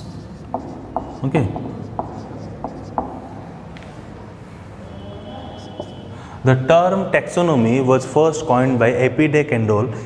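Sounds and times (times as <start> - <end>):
marker pen writing on whiteboard: 0.0 - 3.7, 5.3 - 6.1.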